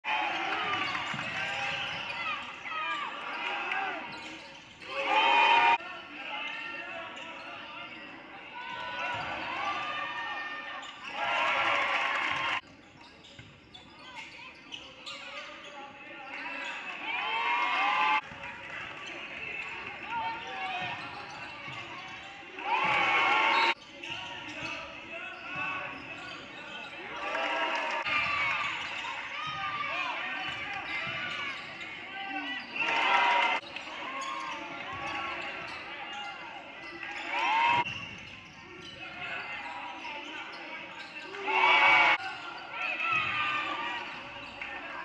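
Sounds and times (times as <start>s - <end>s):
sneakers squeaking: 0.2s - 45.0s.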